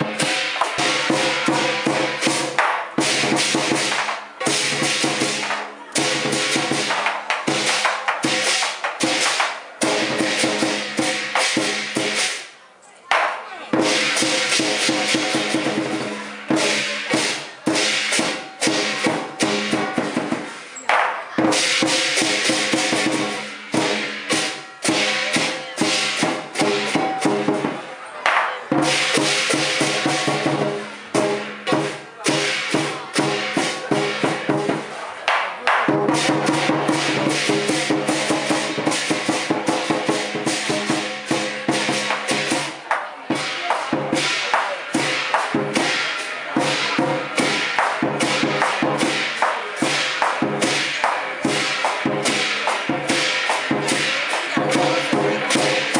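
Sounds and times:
cymbals clashing: 0.0s - 12.5s, 13.2s - 55.9s
drum beating fast rhythm: 0.0s - 55.9s.

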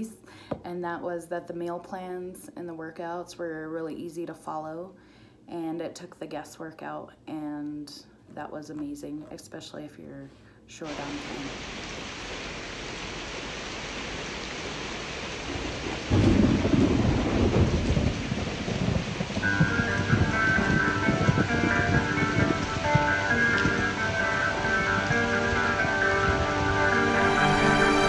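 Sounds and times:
steady rain: 10.9s - 28.0s
thunder rumbling: 15.2s - 28.0s
sustained music notes: 19.4s - 28.0s.

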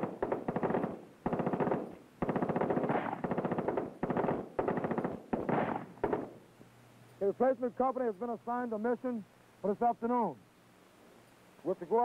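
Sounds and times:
automatic gunfire bursts: 0.0s - 6.4s.

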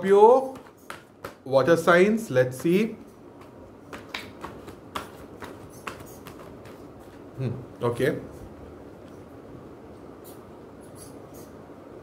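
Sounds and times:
cards being shuffled: 3.4s - 7.3s.

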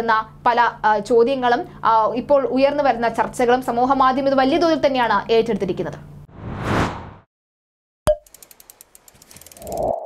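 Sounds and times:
whoosh: 6.3s - 7.3s
rapid ticks: 8.2s - 10.0s.

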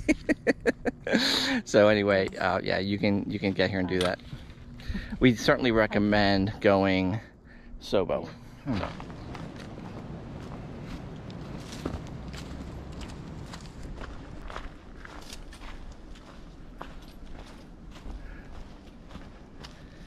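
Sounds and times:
footsteps on dry leaves: 8.9s - 20.0s.

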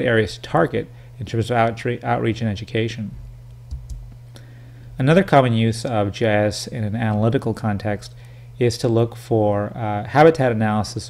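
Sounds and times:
steady low hum: 0.0s - 11.0s
person talking: 5.0s - 11.0s.

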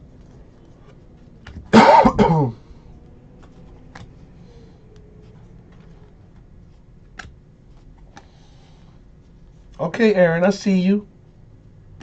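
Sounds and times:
man coughing: 1.7s - 2.6s.

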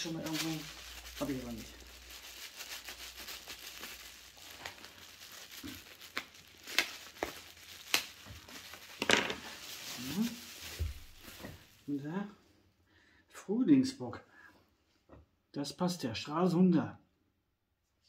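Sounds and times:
newspaper crinkling and rustling: 0.0s - 12.0s.

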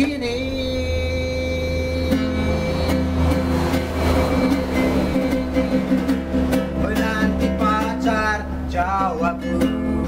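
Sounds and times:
ukulele strumming: 0.0s - 10.0s
low rumble: 1.2s - 7.3s.

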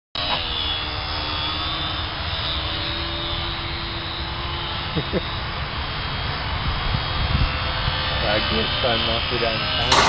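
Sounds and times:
model aircraft motor whine: 0.2s - 10.0s.

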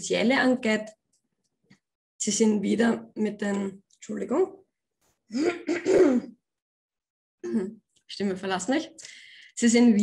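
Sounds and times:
woman clearing her throat: 5.4s - 6.4s.

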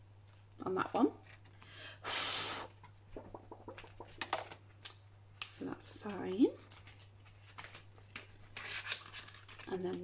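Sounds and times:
banknotes rustling in plastic pockets: 6.6s - 10.0s.

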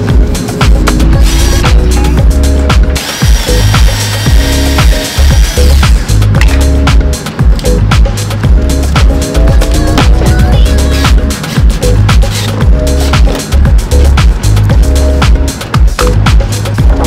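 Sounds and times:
background music with bass line: 0.0s - 17.0s
high steady tone: 0.0s - 17.0s.

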